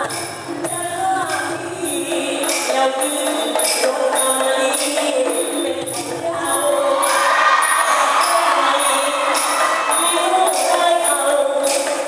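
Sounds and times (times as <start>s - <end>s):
live folk opera music over loudspeakers: 0.0s - 12.0s
crowd noise: 5.7s - 12.0s.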